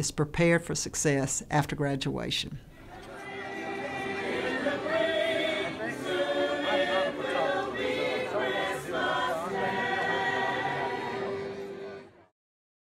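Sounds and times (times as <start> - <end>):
choir singing: 2.8 - 12.3.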